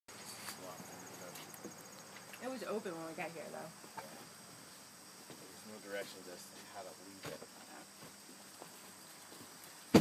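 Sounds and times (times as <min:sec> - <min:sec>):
insects trilling: 0:00.1 - 0:10.0.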